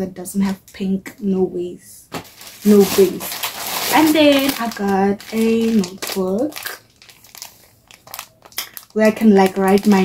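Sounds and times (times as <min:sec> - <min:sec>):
paper crinkling and rustling: 0:02.1 - 0:10.0.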